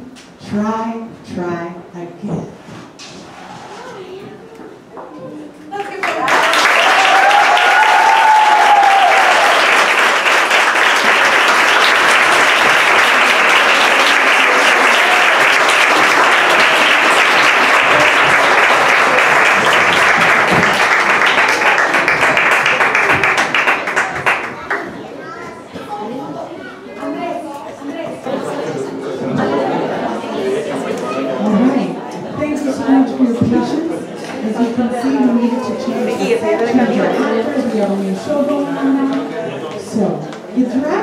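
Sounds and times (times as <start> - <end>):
audience applauding: 5.8 - 24.9.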